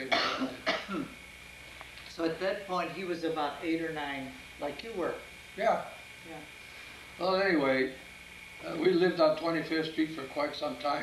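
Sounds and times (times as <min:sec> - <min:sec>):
man coughing: 0:00.0 - 0:01.2.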